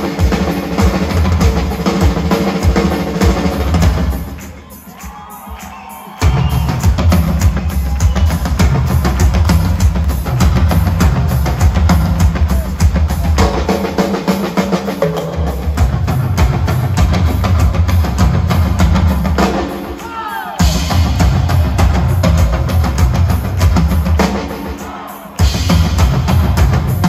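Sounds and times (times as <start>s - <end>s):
fast drum solo: 0.0s - 27.0s.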